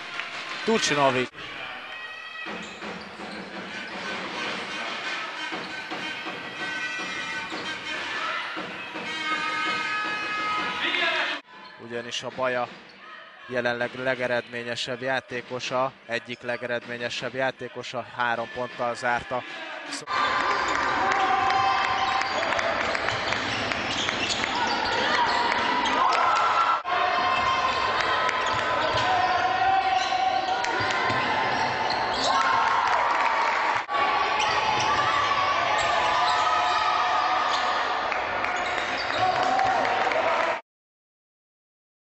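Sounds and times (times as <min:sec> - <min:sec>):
crowd noise and voices: 0:00.0 - 0:40.6
basketball bouncing on court: 0:27.2 - 0:32.5.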